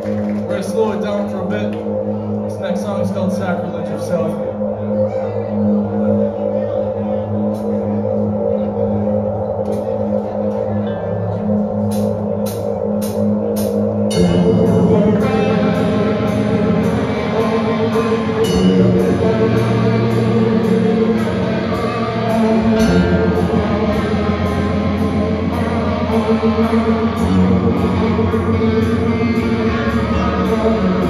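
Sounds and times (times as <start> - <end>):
guitar playing low held notes: 0.0 - 31.0
drums: 11.5 - 31.0
metal band playing: 11.9 - 31.0.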